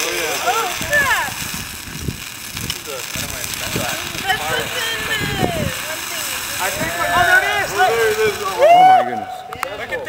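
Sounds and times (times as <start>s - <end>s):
thermite burning hiss: 0.0s - 10.0s
excited voices exclaiming: 3.9s - 9.6s.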